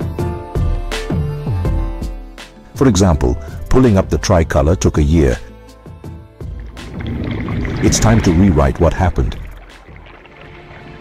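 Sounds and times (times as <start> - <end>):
background music: 0.0 - 11.0
narrator speaking: 2.7 - 5.5, 7.7 - 9.6.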